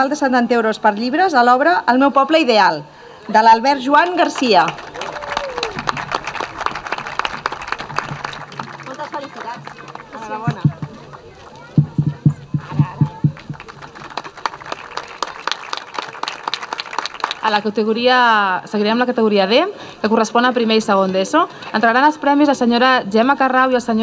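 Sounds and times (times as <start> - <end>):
voices talking: 0.0 - 15.1
audience applauding: 3.8 - 17.8.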